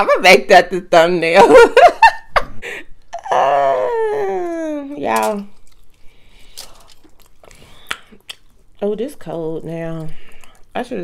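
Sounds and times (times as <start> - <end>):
crunchy chewing: 5.1 - 11.0
mouth clicks: 7.8 - 8.5.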